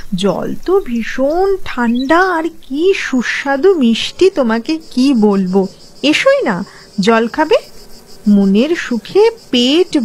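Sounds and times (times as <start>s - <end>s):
crickets chirping: 0.0s - 10.0s
woman speaking: 0.0s - 10.0s.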